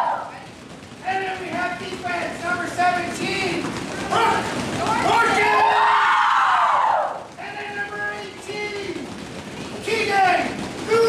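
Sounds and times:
people speaking: 0.3 - 5.9, 7.4 - 9.1, 9.8 - 11.0
girls shouting a group cheer: 5.3 - 7.2.

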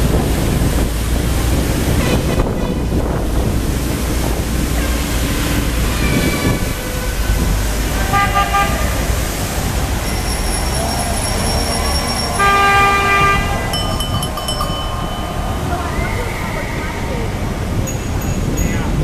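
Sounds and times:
traffic rumble: 0.0 - 19.0
wind on microphone: 0.0 - 19.0
car horns honking: 7.8 - 18.5
high ringing tones: 10.0 - 19.0.

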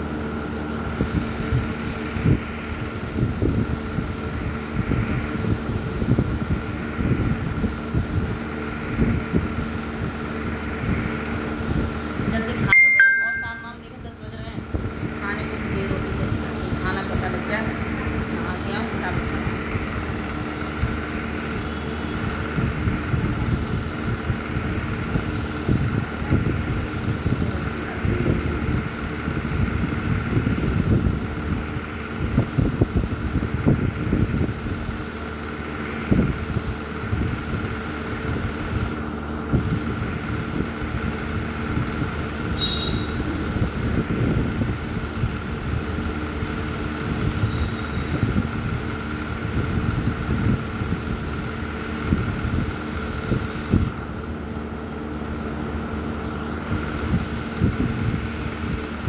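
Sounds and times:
constant hum: 0.0 - 59.0
low mechanical rumble: 0.0 - 59.0
faint high tone: 12.6 - 14.0.

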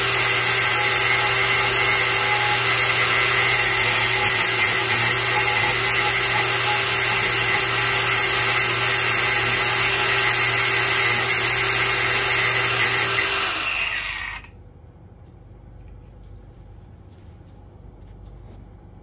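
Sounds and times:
angle grinder cutting metal: 0.0 - 14.5.

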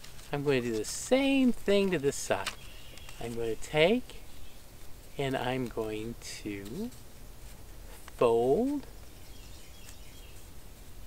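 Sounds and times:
low outdoor background noise: 0.0 - 11.0
faint birdsong: 0.4 - 11.0.

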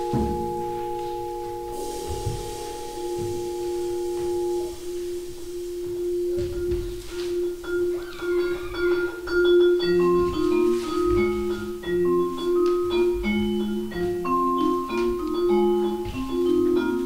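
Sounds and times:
soft low thumps: 0.0 - 7.5
vibraphone notes ringing: 0.0 - 17.0.

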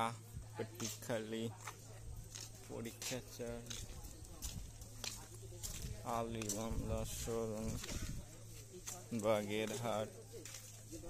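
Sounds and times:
faint talk of people: 0.0 - 11.0.

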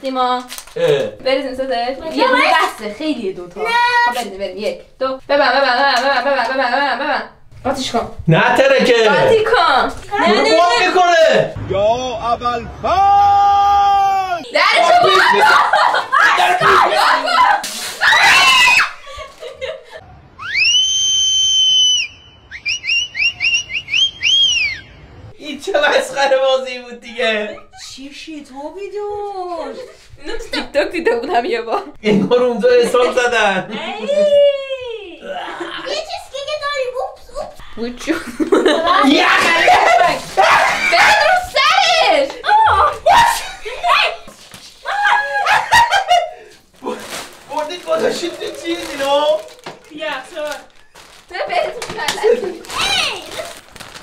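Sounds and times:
people laughing and exclaiming: 5.3 - 7.3, 12.9 - 20.7, 33.1 - 36.3, 38.1 - 49.5, 51.5 - 53.6
man screaming: 12.9 - 14.5.

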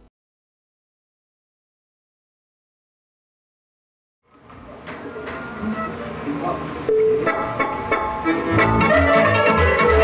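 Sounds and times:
accordion accompaniment: 5.2 - 10.0
violin leading folk tune: 7.2 - 10.0.

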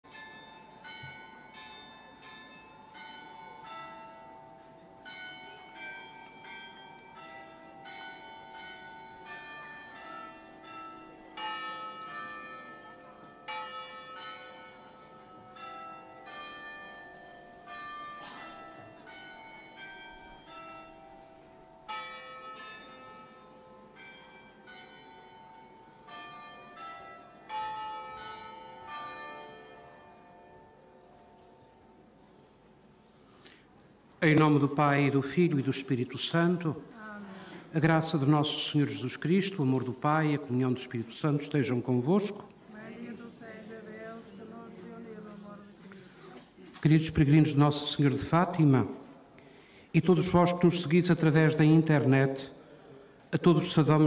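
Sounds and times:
church bells ringing: 0.0 - 33.2, 34.2 - 52.7, 53.3 - 54.0.

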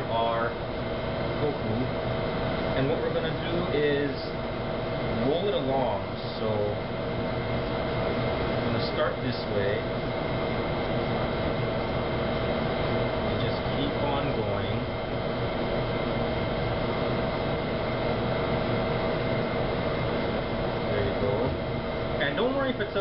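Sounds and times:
constant held tones: 0.0 - 23.0
kitchen machinery humming: 0.0 - 23.0.

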